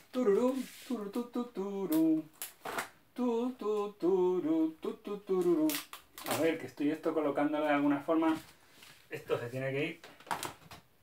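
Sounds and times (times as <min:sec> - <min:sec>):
man humming: 0:00.0 - 0:02.3, 0:03.2 - 0:05.8.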